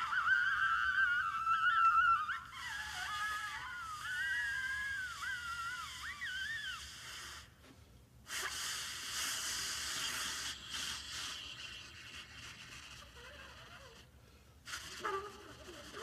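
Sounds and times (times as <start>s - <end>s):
saxophone squealing tones: 0.0s - 7.5s, 12.9s - 14.1s, 14.7s - 16.0s
breathy hiss: 0.0s - 16.0s.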